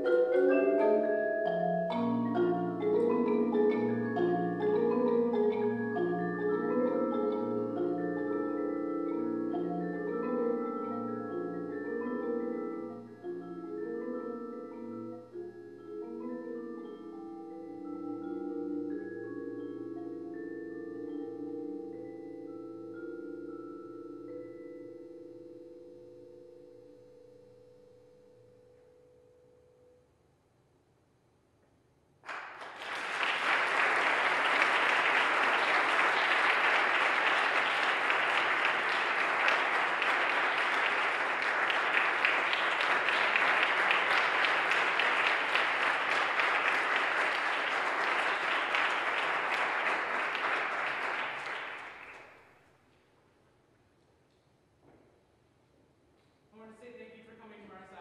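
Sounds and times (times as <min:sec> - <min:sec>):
vibraphone and marimba chord ringing: 0:00.0 - 0:29.9
audience applause: 0:32.3 - 0:52.4.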